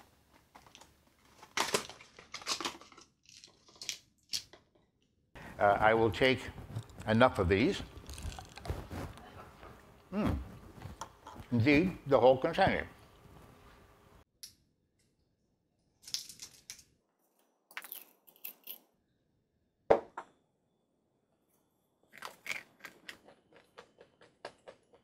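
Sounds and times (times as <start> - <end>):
tablets crunching being chewed: 7.8 - 9.1, 22.1 - 25.0.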